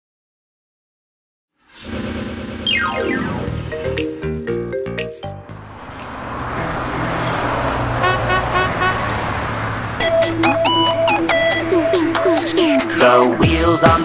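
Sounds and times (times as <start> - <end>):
vehicle engine sound effect: 1.7 - 4.8, 5.4 - 13.9
upbeat electronic music: 2.7 - 5.7, 6.5 - 8.9, 10.0 - 14.0.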